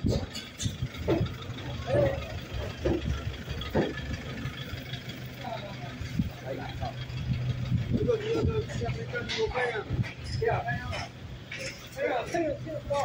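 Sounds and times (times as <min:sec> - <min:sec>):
indistinct voices talking: 0:00.0 - 0:13.0
vehicle engine idling: 0:00.0 - 0:13.0.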